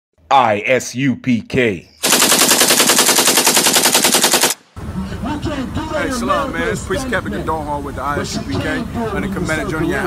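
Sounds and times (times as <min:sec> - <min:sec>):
rapid automatic gunfire: 0:02.0 - 0:04.6.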